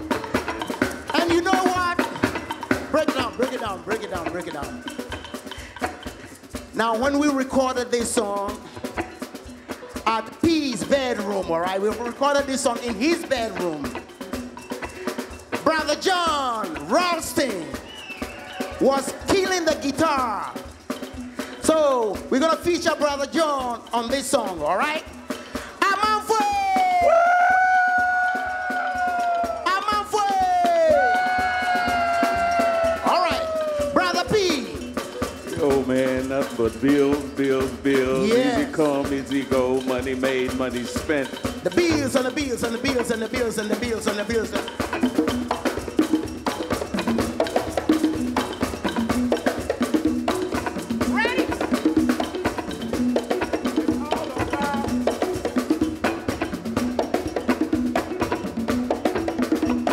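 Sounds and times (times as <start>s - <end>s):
light percussion: 0.0s - 59.9s
man speaking: 1.1s - 2.2s, 2.9s - 4.8s, 29.5s - 31.1s, 33.0s - 34.9s, 35.5s - 44.7s.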